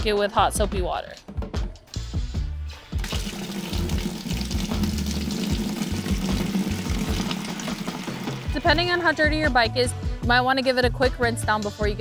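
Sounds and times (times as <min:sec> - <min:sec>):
tap water running into tub: 0:03.0 - 0:08.9.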